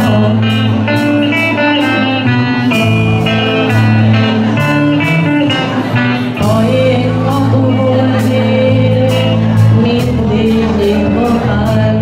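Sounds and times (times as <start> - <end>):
bass guitar: 0.0 - 12.0
drum kit steady beat: 0.0 - 12.0
electric guitar: 0.0 - 12.0.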